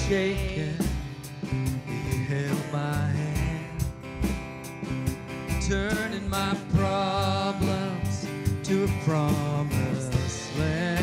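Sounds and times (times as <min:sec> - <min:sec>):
band playing country gospel: 0:00.0 - 0:11.0.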